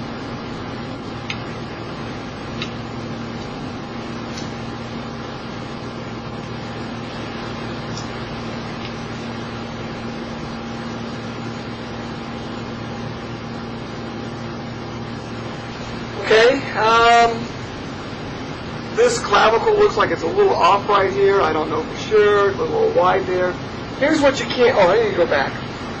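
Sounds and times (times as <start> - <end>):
machine hum: 0.0 - 26.0.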